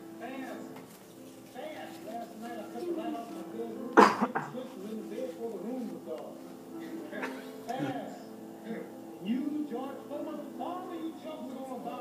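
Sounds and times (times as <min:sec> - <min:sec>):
music playing: 0:00.0 - 0:12.0
person coughing: 0:04.0 - 0:04.5.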